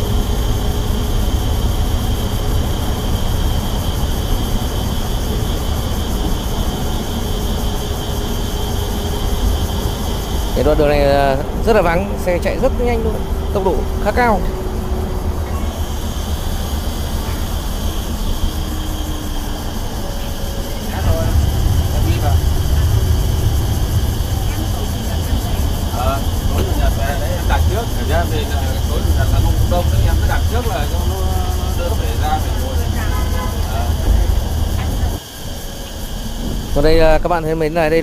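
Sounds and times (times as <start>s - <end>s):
bus engine and road rumble: 0.0s - 38.0s.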